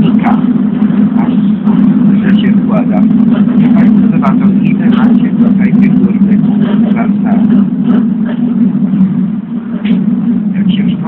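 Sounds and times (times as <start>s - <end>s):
vehicle cabin drone: 0.0s - 11.0s.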